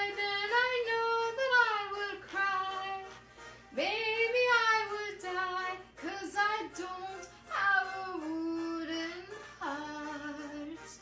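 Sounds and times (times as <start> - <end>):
short breaths: 3.2 - 3.7.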